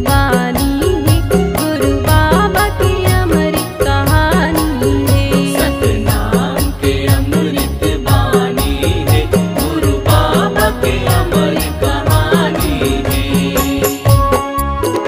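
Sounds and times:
percussion steady beat: 0.0s - 15.0s
woman singing chant-like melody: 1.8s - 13.5s.

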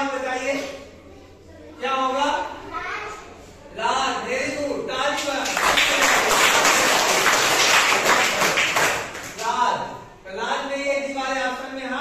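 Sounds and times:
children clapping: 5.2s - 9.6s.

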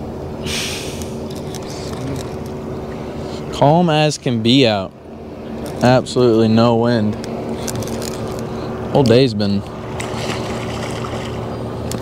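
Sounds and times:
boat motor running: 0.0s - 12.0s.

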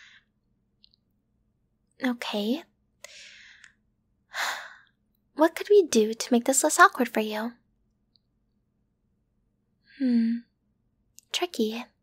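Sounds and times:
woman breathing: 0.0s - 0.4s, 3.0s - 5.0s
soft sigh: 9.9s - 10.5s.

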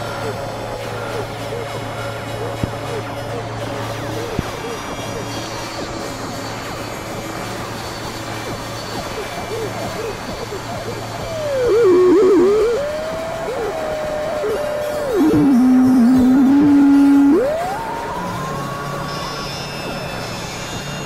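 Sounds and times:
synthesizer drone: 0.0s - 21.0s
warbling tone bending in pitch: 8.4s - 19.3s
short wavering synth tones: 8.4s - 20.8s.

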